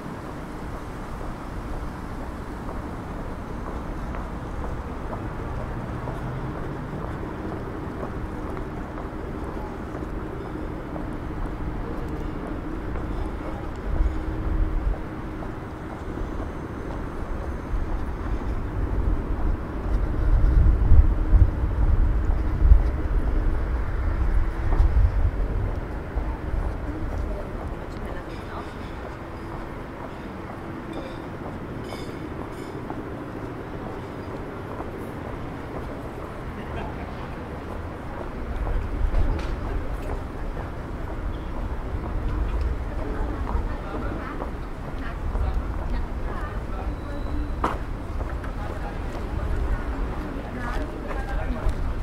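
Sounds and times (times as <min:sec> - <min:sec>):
traffic: 0:00.0 - 0:52.0
distant voices: 0:01.9 - 0:52.0.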